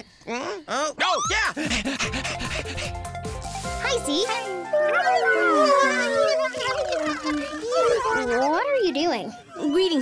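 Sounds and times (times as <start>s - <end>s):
children's background music: 2.1s - 8.4s.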